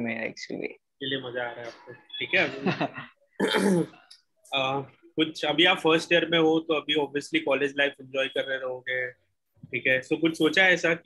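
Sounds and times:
man coughing: 3.4s - 4.0s.

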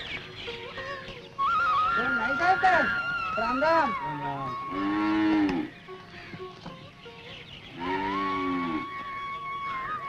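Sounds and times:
cow mooing: 4.7s - 5.7s, 7.8s - 8.9s.

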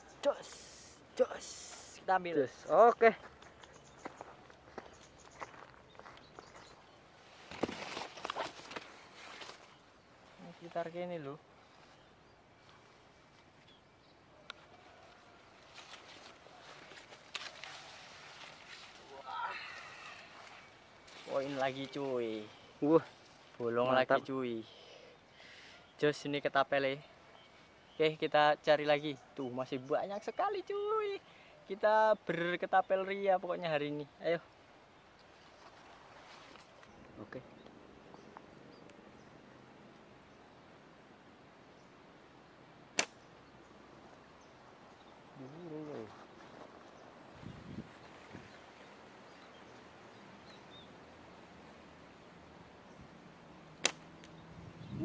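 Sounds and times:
corn leaves rustling: 7.3s - 10.9s, 15.6s - 23.7s, 35.5s - 36.8s
sharp click: 43.0s - 43.2s
slingshot bands snapping: 43.0s - 43.2s, 53.8s - 54.4s
person murmuring: 45.4s - 46.1s.

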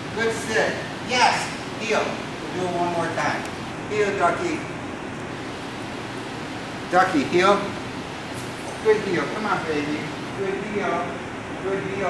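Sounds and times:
fan hissing: 0.0s - 12.0s.

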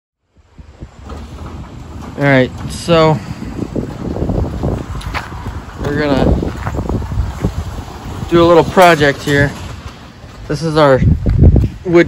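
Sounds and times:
wind rumbling on microphone: 0.2s - 12.0s.

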